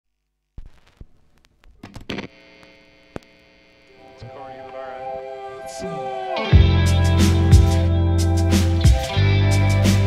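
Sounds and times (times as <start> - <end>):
buzzy electrical hum: 0.1 - 8.5
sharp clicks and crackles: 0.6 - 3.4.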